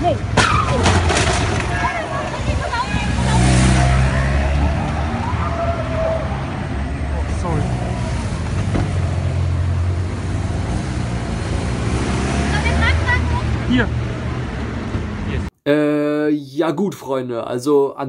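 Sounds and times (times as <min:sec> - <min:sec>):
voices: 0:00.0 - 0:08.6, 0:12.3 - 0:14.5
cars driving past: 0:00.0 - 0:15.5.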